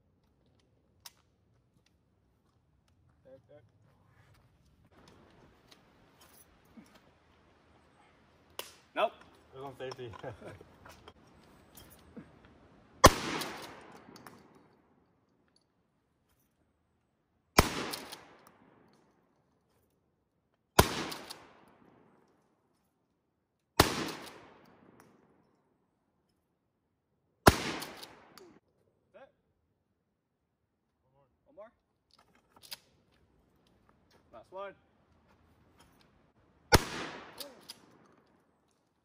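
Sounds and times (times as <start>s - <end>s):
shotgun shots with echo: 13.0s - 14.2s, 17.6s - 18.4s, 20.8s - 21.7s, 23.8s - 24.6s, 27.4s - 28.4s, 36.7s - 37.7s.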